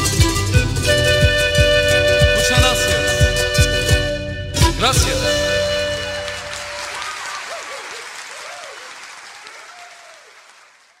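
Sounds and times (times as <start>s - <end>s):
audience applause: 5.9s - 11.0s.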